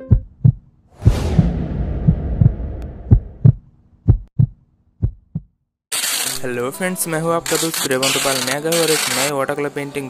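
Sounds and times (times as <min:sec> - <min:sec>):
low thumps: 0:00.1 - 0:05.5
sudden whoosh: 0:00.9 - 0:03.6.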